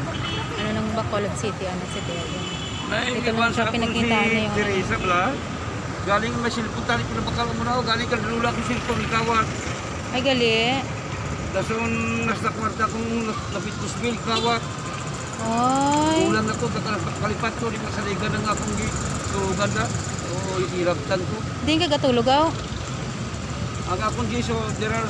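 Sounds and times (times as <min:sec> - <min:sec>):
street traffic: 0:00.0 - 0:25.0.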